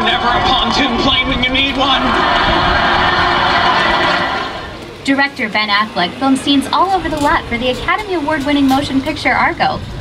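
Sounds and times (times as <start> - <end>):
audience laughter through speakers: 1.8 - 4.7.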